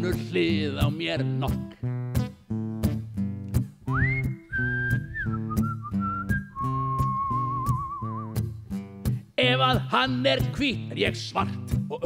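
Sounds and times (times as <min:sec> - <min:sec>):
acoustic guitar strumming: 0:00.0 - 0:12.0
person whistling a melody: 0:03.8 - 0:08.4.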